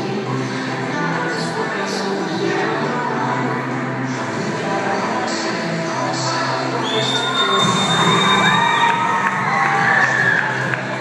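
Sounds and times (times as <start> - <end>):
background music: 0.0 - 11.0
children cheering and shouting: 7.1 - 11.0.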